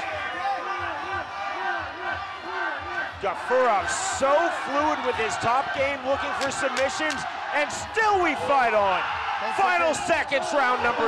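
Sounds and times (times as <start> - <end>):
commentary speech: 0.0 - 11.0
crowd voices: 0.0 - 11.0.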